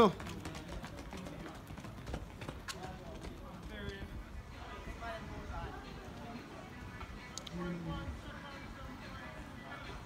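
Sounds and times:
rapid footfalls on running track: 0:00.0 - 0:04.3
faint voices: 0:00.0 - 0:10.0.

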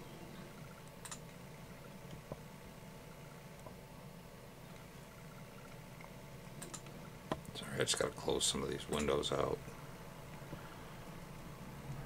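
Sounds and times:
steady low hum: 0:00.0 - 0:12.0
computer mouse clicks: 0:01.0 - 0:01.3, 0:06.6 - 0:06.9.

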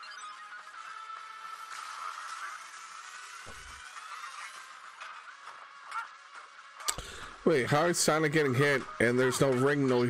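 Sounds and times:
tinny cartoon soundtrack music: 0:00.0 - 0:10.0.

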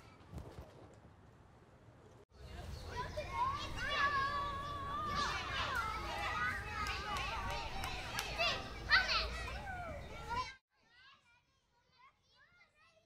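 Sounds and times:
adult chatter: 0:02.4 - 0:10.6
children shouting and playing: 0:02.4 - 0:13.0.

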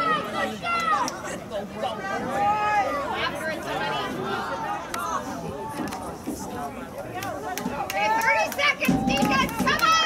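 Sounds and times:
voices shouting and calling out: 0:00.0 - 0:10.0.

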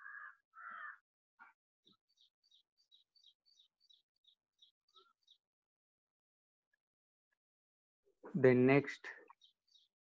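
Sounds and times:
crow cawing: 0:00.0 - 0:01.0.

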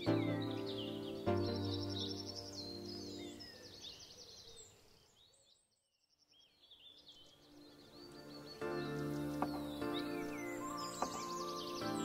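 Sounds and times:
background music: 0:00.0 - 0:03.6, 0:07.3 - 0:12.0
birdsong chirping: 0:00.0 - 0:12.0.

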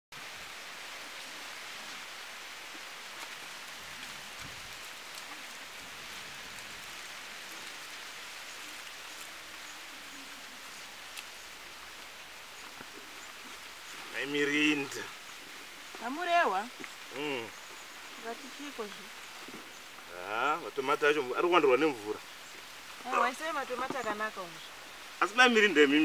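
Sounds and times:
outdoor background hiss: 0:00.1 - 0:26.0.

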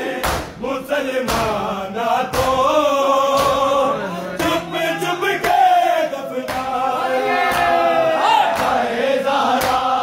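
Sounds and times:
men chanting together: 0:00.0 - 0:10.0
hands slapping chests: 0:00.2 - 0:00.6, 0:01.2 - 0:01.6, 0:02.3 - 0:02.6, 0:06.4 - 0:06.8, 0:08.5 - 0:08.9, 0:09.5 - 0:09.9.

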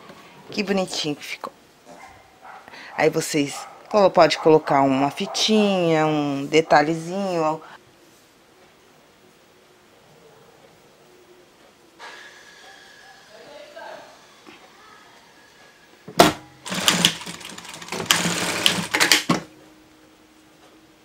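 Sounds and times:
sewing machine stitching: 0:16.6 - 0:19.4.

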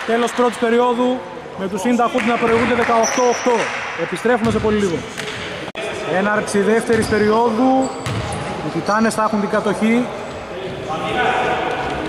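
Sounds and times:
man talking: 0:00.0 - 0:05.2, 0:05.8 - 0:08.0, 0:08.6 - 0:11.8
reverberant sports hall background: 0:00.0 - 0:12.0.

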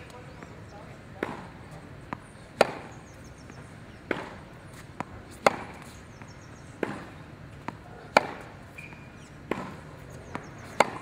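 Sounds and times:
tennis racket hitting ball: 0:01.2 - 0:02.9, 0:04.0 - 0:11.0.

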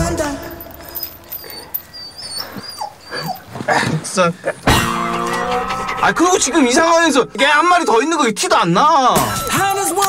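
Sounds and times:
dog whimpering: 0:00.8 - 0:03.9.

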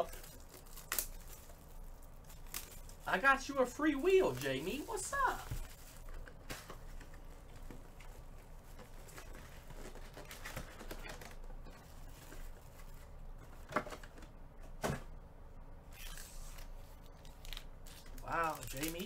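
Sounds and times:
foil packs crinkling: 0:00.0 - 0:07.7, 0:16.0 - 0:19.0.

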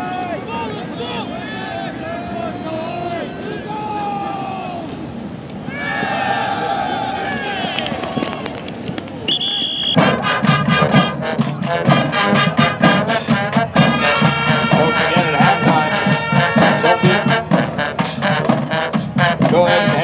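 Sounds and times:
high whistle blast: 0:09.3 - 0:10.1
marching snare drums and cymbals: 0:09.8 - 0:20.0
brass band playing: 0:09.9 - 0:20.0.

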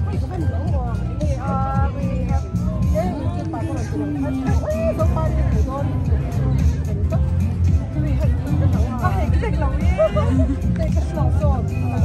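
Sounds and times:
background music: 0:00.0 - 0:12.0
crowd babble: 0:00.0 - 0:12.0
women talking: 0:00.0 - 0:12.0.

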